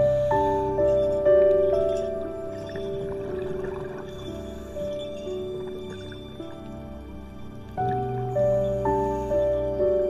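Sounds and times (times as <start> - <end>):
slow soothing piano music: 0.0 - 10.0.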